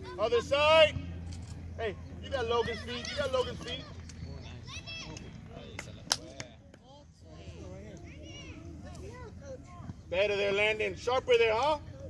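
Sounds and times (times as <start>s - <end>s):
distant shouting crowd: 0.0s - 6.0s, 6.7s - 11.9s.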